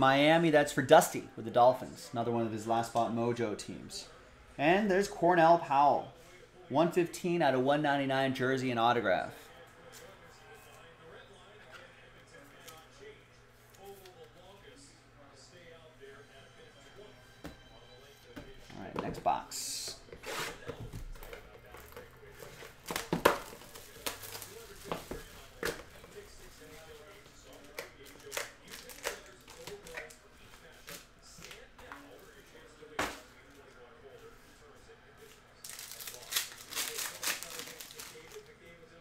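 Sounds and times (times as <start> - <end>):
foil wrapper crinkling and tearing: 22.6 - 30.2, 35.6 - 38.6.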